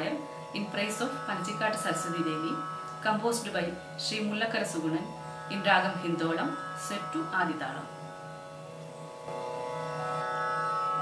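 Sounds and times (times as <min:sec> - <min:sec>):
steady musical drone: 0:00.0 - 0:11.0
sustained note: 0:00.0 - 0:11.0.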